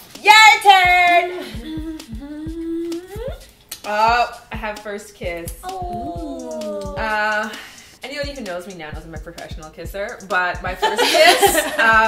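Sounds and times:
woman humming: 1.4 - 3.5, 5.6 - 7.4.

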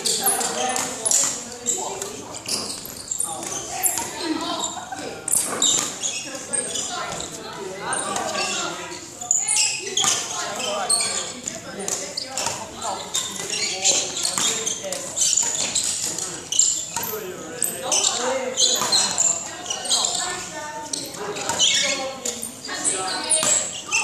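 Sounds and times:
voices talking in echoing hall: 0.0 - 24.0.

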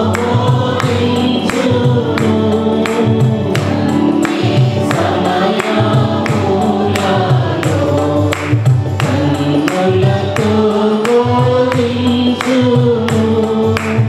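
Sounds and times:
choir singing worship song: 0.0 - 14.0
electronic keyboard: 0.0 - 14.0
steady percussion beat: 0.0 - 14.0.

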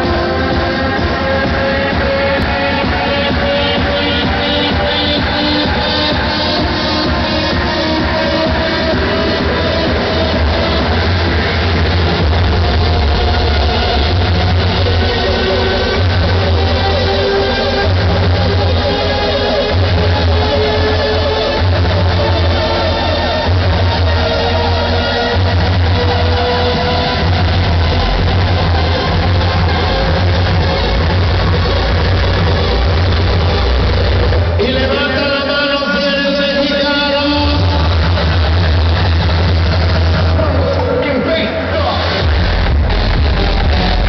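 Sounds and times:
loud dance music heavy bass: 0.0 - 44.0.

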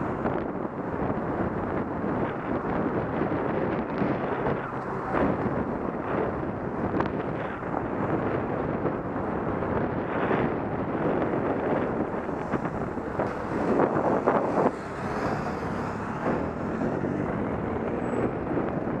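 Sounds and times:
car engines and tyres: 0.0 - 19.0
wind rushing over microphone: 0.0 - 19.0.

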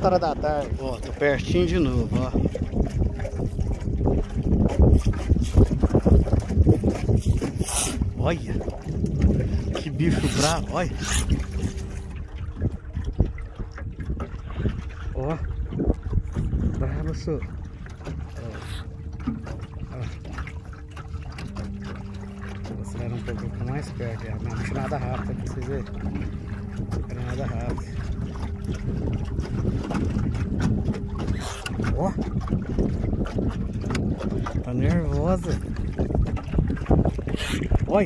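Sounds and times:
small knocks and splashes: 0.0 - 38.0
water lapping against canoe: 0.0 - 38.0
wind buffeting microphone: 0.0 - 38.0
electric motor hum: 10.2 - 12.3.

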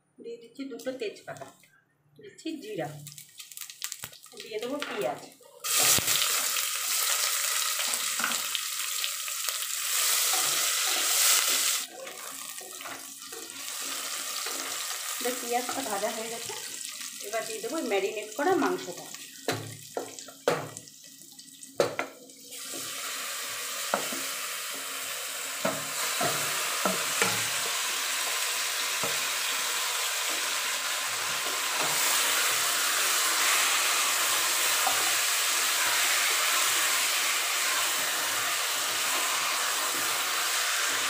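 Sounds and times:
onions sizzling in hot oil: 3.1 - 41.0.

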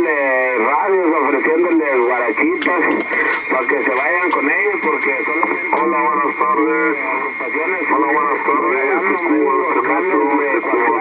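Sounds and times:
man speaking over radio: 0.0 - 11.0.

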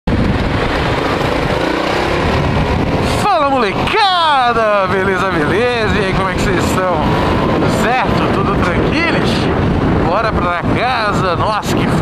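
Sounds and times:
motorcycle engine running: 0.1 - 10.9.

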